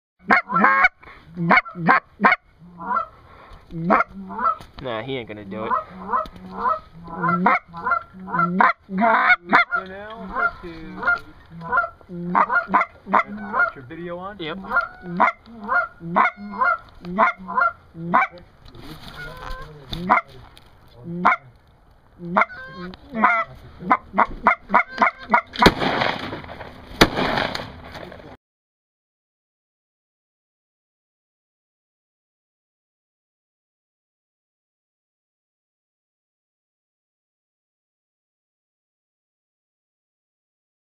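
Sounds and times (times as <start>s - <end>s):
goose honking: 0.2s - 3.1s, 3.7s - 4.6s, 5.6s - 20.4s, 21.0s - 21.5s, 22.2s - 25.7s
shotgun blast echoing: 25.6s - 27.8s.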